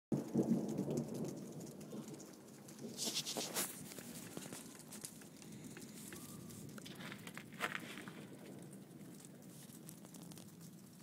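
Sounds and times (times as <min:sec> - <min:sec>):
dense low rumble of rain: 0:00.1 - 0:11.0
hail pellets ticking: 0:00.1 - 0:11.0.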